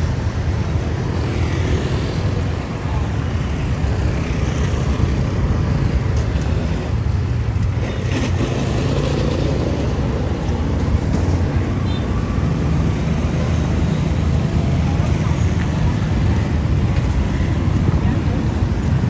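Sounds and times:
rumble of passing vehicles: 0:00.0 - 0:19.0.

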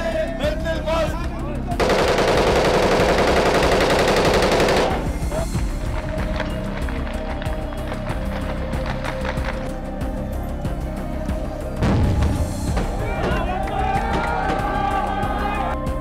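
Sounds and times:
automatic gunfire: 0:01.8 - 0:05.2.

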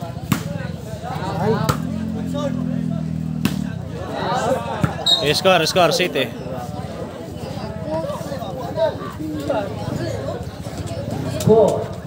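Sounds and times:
crowd chatter: 0:00.0 - 0:12.0
ball being kicked: 0:00.2 - 0:00.6, 0:03.4 - 0:03.7.

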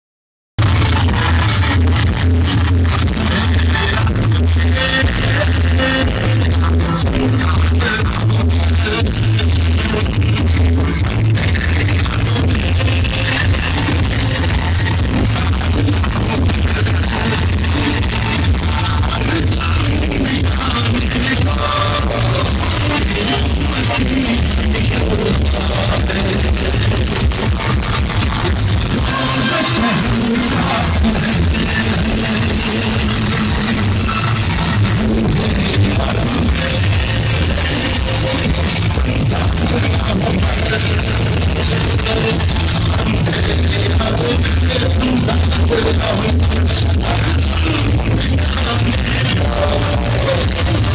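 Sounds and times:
loud dance music with pulsing bass: 0:00.6 - 0:50.9.

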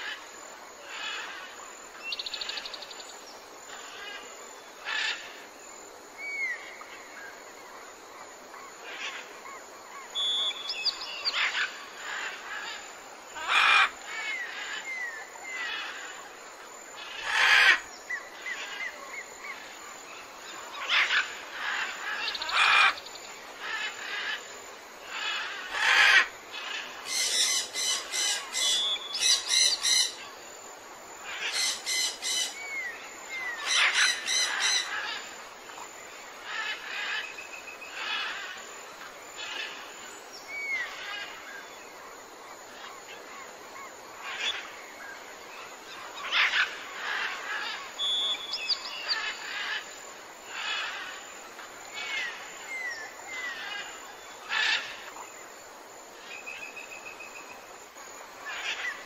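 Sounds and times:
parrots screeching: 0:33.6 - 0:35.2
parrots squawking: 0:33.6 - 0:35.2.

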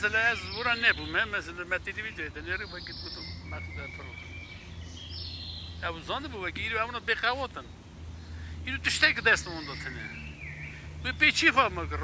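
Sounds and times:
man talking: 0:00.0 - 0:04.3, 0:05.8 - 0:07.8, 0:08.5 - 0:10.2, 0:10.8 - 0:12.0
birds singing: 0:00.0 - 0:12.0.

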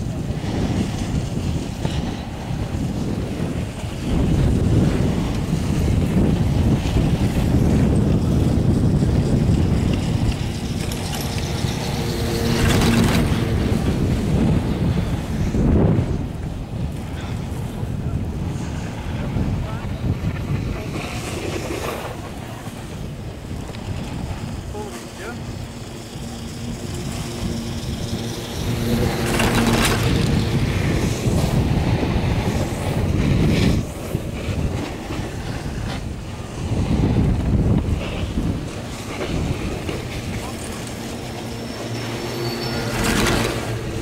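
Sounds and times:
chairlift low rumble: 0:00.0 - 0:44.0
wind buffeting microphone: 0:00.0 - 0:44.0.

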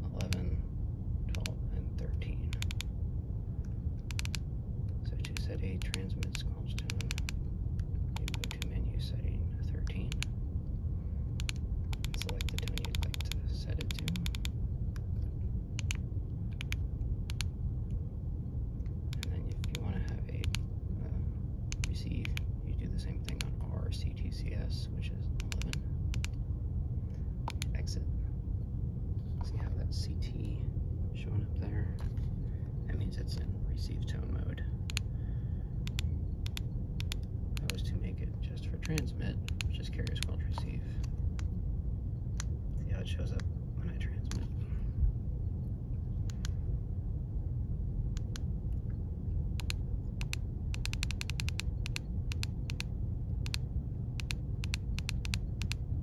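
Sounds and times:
low background rumble: 0:00.0 - 0:56.0
radio keypad buttons clicking: 0:11.4 - 0:14.5.

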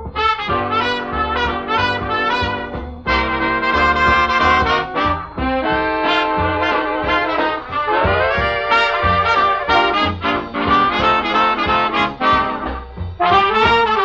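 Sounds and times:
swing brass band music: 0:00.0 - 0:14.0.

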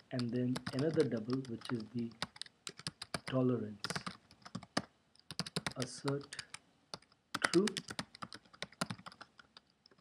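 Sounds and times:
typing on computer keyboard: 0:00.2 - 0:10.0.

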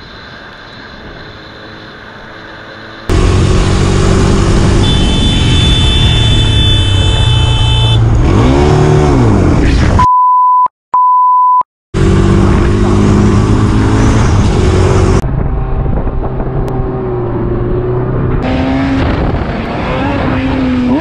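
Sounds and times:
motorcycle wind and road noise: 0:00.4 - 0:09.8, 0:12.0 - 0:21.0
quad bike engine revving: 0:03.1 - 0:09.8
censor bleep: 0:10.0 - 0:11.7.

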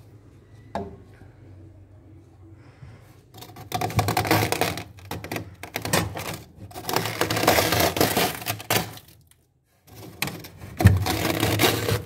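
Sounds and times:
fingers scraping freezer frost: 0:03.3 - 0:09.2, 0:09.8 - 0:12.0.

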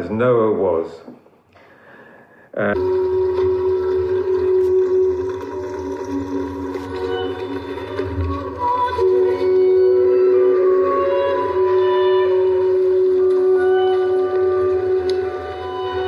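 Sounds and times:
film music with held tones: 0:02.6 - 0:16.0.

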